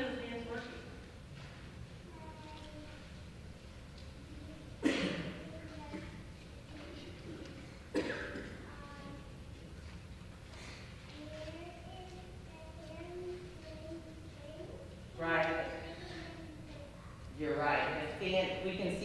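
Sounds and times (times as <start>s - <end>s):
faint room noise: 0.0s - 19.0s.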